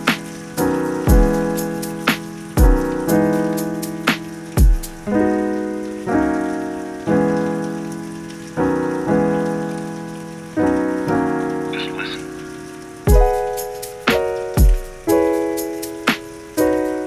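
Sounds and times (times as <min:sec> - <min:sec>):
mellow keyboard chords: 0:00.0 - 0:17.0
rain: 0:00.0 - 0:17.0.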